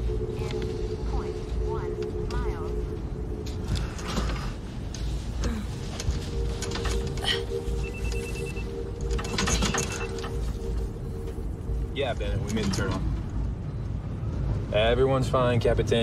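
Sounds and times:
low musical drone: 0.0s - 15.9s
electronic phone ringing: 6.0s - 12.0s.

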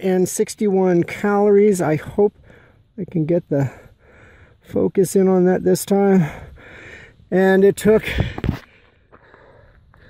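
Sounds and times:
faint outdoor background: 0.0s - 10.0s
man breathing: 2.4s - 3.0s, 3.6s - 4.7s, 6.2s - 7.3s, 8.1s - 10.0s.

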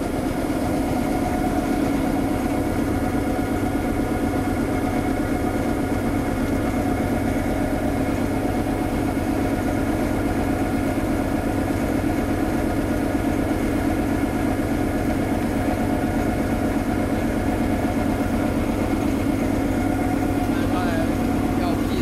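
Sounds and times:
street sweeper machinery humming: 0.0s - 22.0s.

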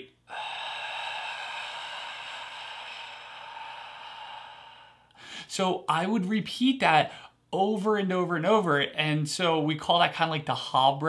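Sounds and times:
man exhaling slowly: 0.0s - 5.5s.

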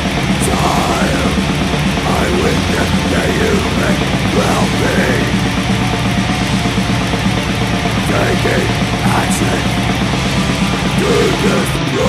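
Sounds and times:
distorted electric guitars: 0.0s - 12.0s
fast driving drums: 0.0s - 12.0s.

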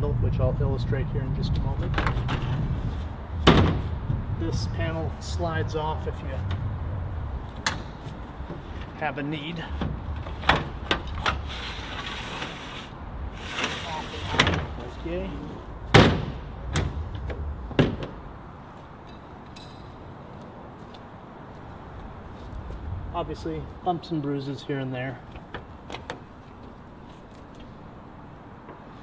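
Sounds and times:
panel scraping as it slides: 11.3s - 14.7s.

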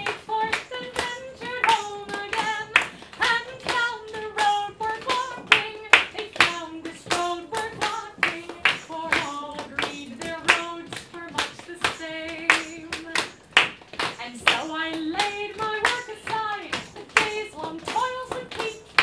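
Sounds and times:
hand claps: 0.0s - 19.0s
person singing folk song: 0.0s - 19.0s.

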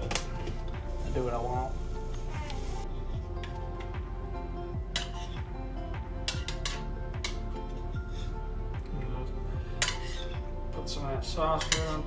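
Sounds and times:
background music with beat: 0.0s - 12.0s
metal spoon scraping frying pan: 4.9s - 5.4s, 6.2s - 8.4s, 9.8s - 10.4s.

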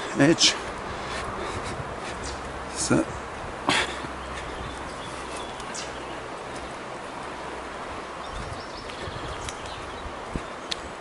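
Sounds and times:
barefoot footsteps on dirt path: 0.0s - 11.0s.

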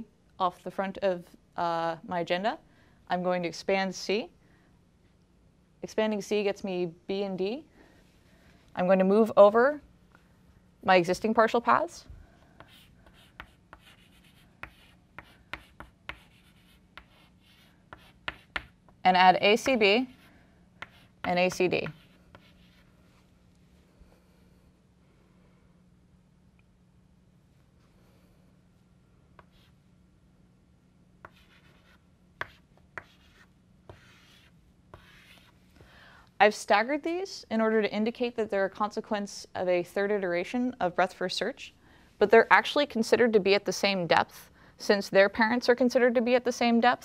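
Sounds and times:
chalk writing on blackboard: 12.6s - 18.8s, 19.6s - 22.9s, 31.2s - 35.6s.

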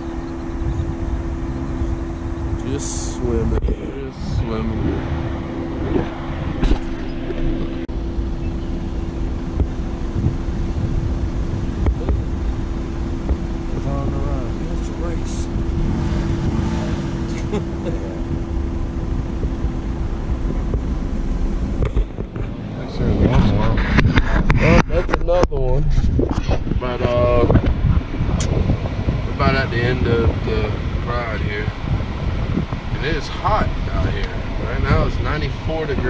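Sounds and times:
car engine hum and rumble: 0.0s - 36.0s
wind buffeting microphone: 0.0s - 36.0s.

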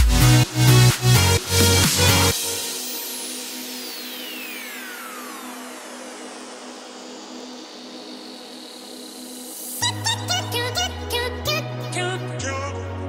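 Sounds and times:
noise sweep: 0.0s - 10.6s.

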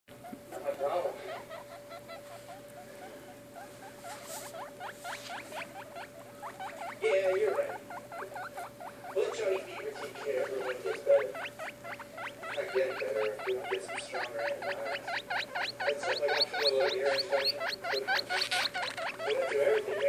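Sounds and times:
baby guinea pigs squeaking: 0.1s - 20.0s.

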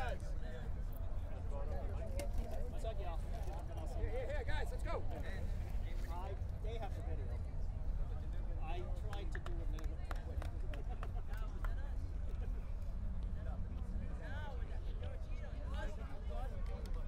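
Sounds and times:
many people chattering: 0.0s - 17.0s
steady low rumble: 0.0s - 17.0s.

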